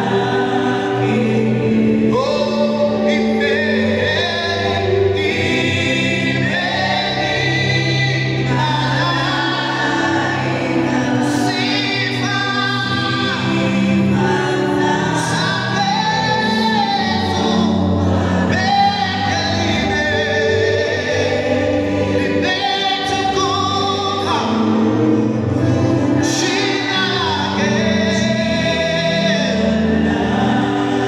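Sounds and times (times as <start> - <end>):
backing singers: 0.0 - 31.0
man singing a hymn: 0.9 - 31.0.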